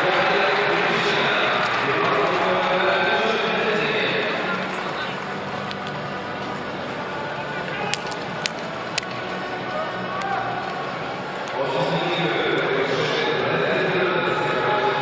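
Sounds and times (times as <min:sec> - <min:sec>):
music: 0:00.0 - 0:15.0.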